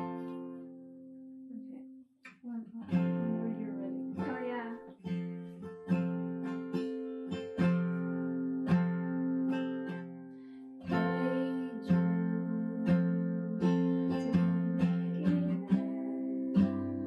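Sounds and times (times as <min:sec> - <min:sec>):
acoustic guitar strummed chords: 0:00.0 - 0:01.6, 0:02.9 - 0:17.0.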